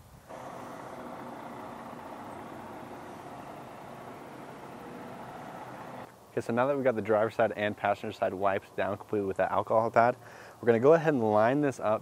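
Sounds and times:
steady mechanical drone: 0:00.3 - 0:06.1.

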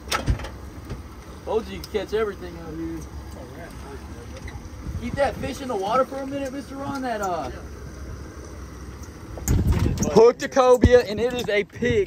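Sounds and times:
boat noise: 0:00.0 - 0:12.0
wind rumble on microphone: 0:04.4 - 0:05.7, 0:09.2 - 0:12.0
microphone buffeting and handling: 0:09.3 - 0:12.0.

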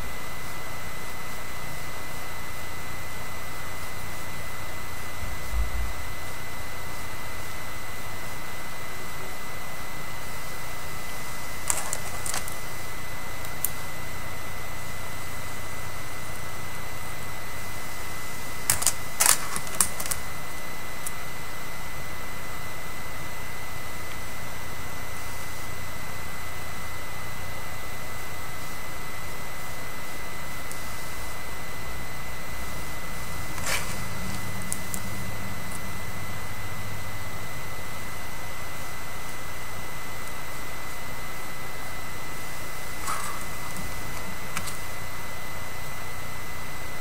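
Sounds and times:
faint high whine: 0:00.0 - 0:47.0.

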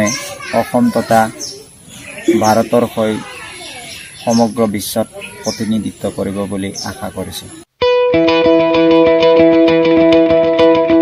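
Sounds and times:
person talking: 0:02.2 - 0:07.6.

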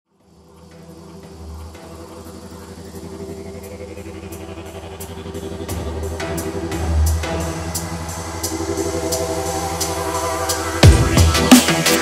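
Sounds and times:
growling synth bass: 0:00.5 - 0:12.0.

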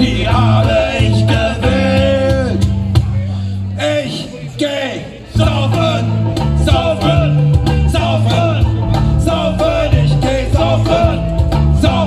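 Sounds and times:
live band playing amplified music: 0:00.0 - 0:12.0.

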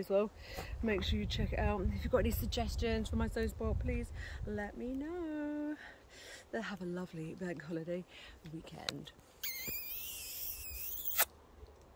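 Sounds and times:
high-pitched squeaky kiss: 0:09.4 - 0:11.4.

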